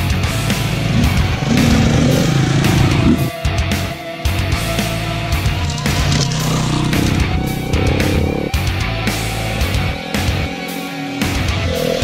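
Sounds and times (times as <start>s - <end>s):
motorcycles riding past: 5.1s - 11.4s.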